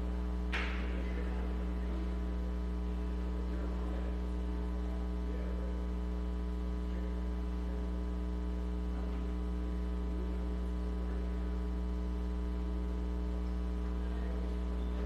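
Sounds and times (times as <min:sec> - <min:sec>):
low mains hum: 0:00.0 - 0:15.0.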